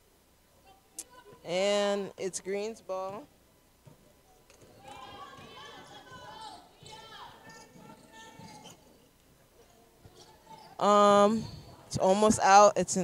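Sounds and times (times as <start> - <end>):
players' footsteps: 3.0 - 9.3.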